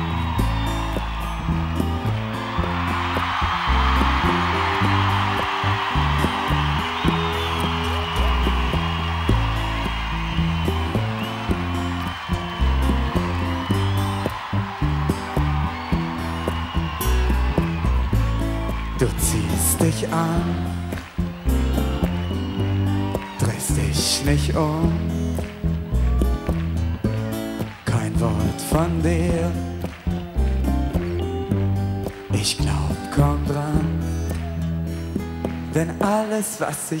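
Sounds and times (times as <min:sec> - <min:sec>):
crowd cheering and whistling: 0:00.0 - 0:37.0
live band playing pop intro: 0:00.0 - 0:37.0.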